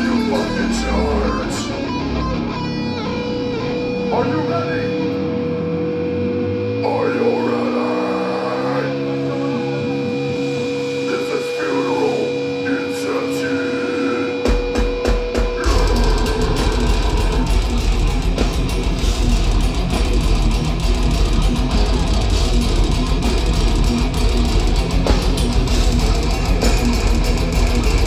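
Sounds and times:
electric guitars ringing: 0.0s - 28.0s
metal band playing loud: 0.0s - 28.0s
drum strikes: 14.4s - 28.0s.

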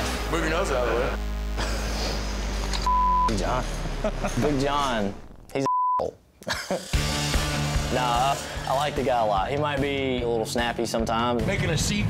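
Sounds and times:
low background music: 0.0s - 5.4s, 6.8s - 12.0s
censor bleep: 2.8s - 3.4s, 5.6s - 6.1s.

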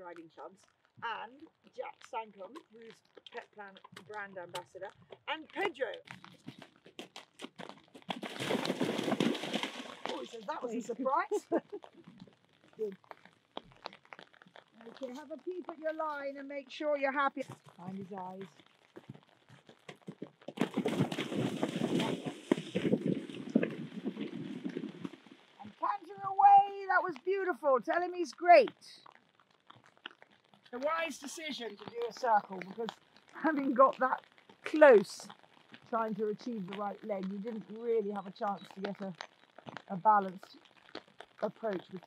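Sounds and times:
horse hoofbeats: 0.0s - 42.0s
horse splashing through water: 1.6s - 16.4s, 17.0s - 42.0s.

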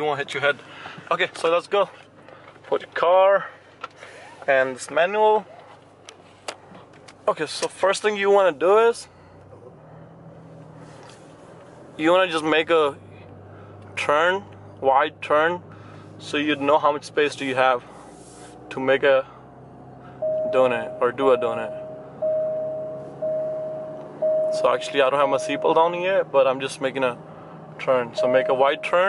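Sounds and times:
car engine low hum from cabin: 0.0s - 29.0s
seatbelt warning chime: 20.2s - 26.0s, 28.2s - 29.0s.

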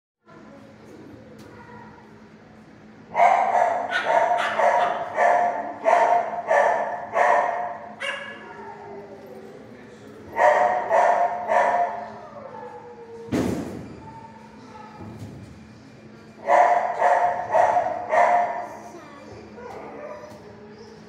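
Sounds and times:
dog barking: 3.1s - 8.5s, 10.4s - 12.1s, 16.4s - 18.7s.

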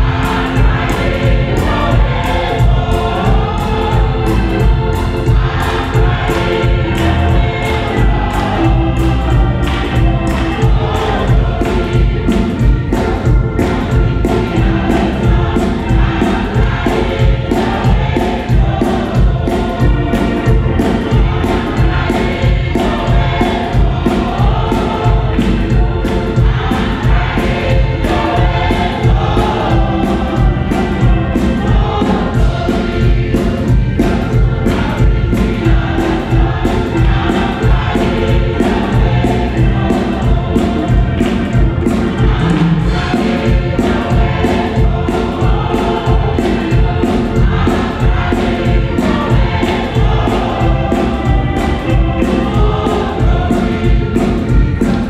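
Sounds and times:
hand-clapping: 0.0s - 29.6s
gospel choir singing: 0.0s - 55.0s
instrumental backing: 0.0s - 55.0s.

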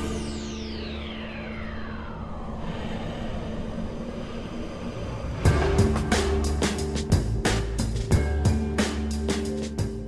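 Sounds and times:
steady low rumble: 0.2s - 8.4s
falling whoosh: 0.8s - 7.9s.

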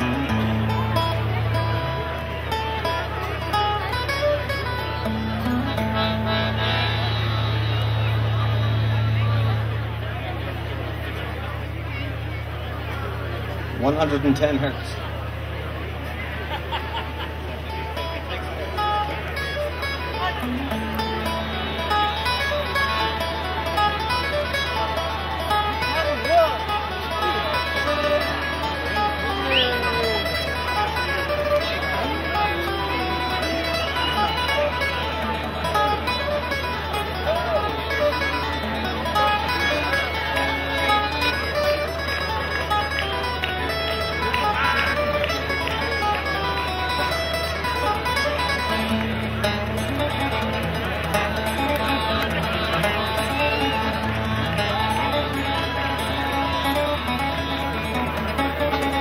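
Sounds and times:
acoustic guitar: 0.0s - 59.0s
button accordion melody: 3.7s - 10.4s.

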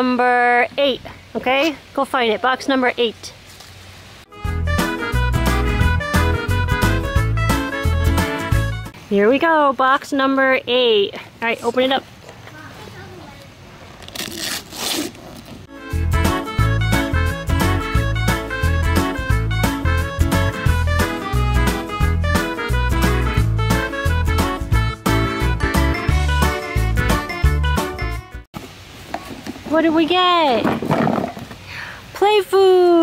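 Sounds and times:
woman speaking: 0.0s - 3.4s, 9.1s - 12.1s, 29.7s - 30.7s, 32.2s - 33.0s
outdoor ambience: 0.0s - 4.3s, 8.6s - 15.7s, 28.6s - 33.0s
music with steady beat: 4.3s - 9.0s, 15.7s - 28.4s
wrapping paper tearing: 14.0s - 15.7s.

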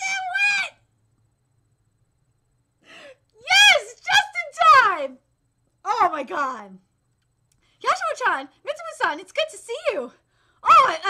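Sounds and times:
woman squealing excitedly: 3.4s - 3.9s, 10.6s - 11.0s.

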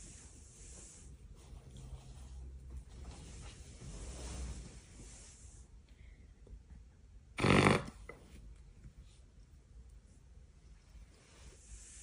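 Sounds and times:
fake fart noise: 7.4s - 8.1s.

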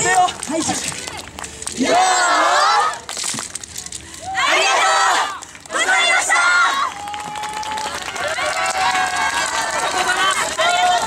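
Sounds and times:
high-pitched voices shouting and cheering: 4.2s - 11.0s.

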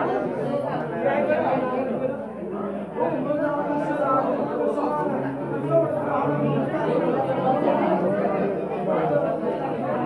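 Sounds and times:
overlapping chatter of people: 0.0s - 10.0s.

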